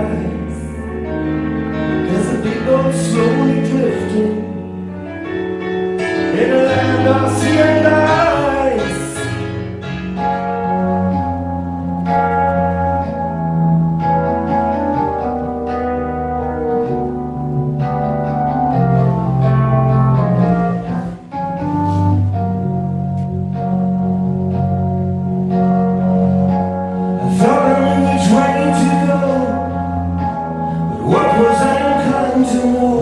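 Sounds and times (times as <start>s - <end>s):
piano playing slow chords: 0.0s - 33.0s.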